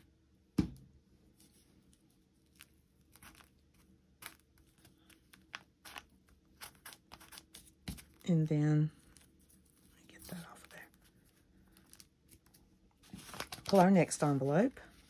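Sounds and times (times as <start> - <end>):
paper tapping and rustling: 13.0 - 14.0.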